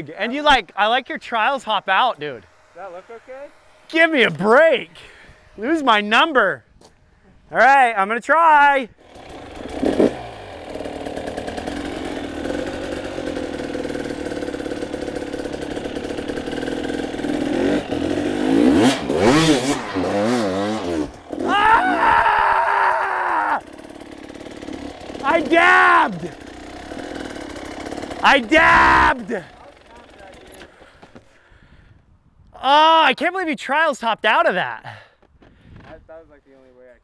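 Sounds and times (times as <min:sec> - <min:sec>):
dirt bike engine revving: 0:00.1 - 0:06.5, 0:08.9 - 0:30.8.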